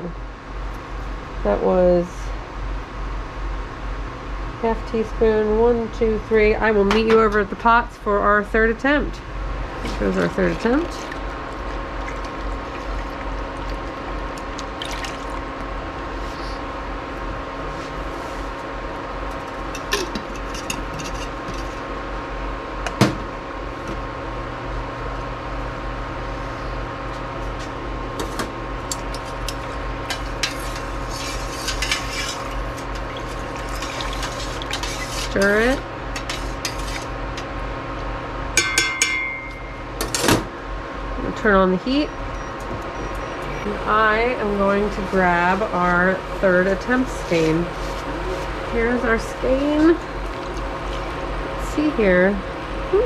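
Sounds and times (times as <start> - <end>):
steady electrical hum: 0.0 - 53.0
liquid poured into a pot: 10.8 - 15.5
short electronic beep: 42.0 - 43.8.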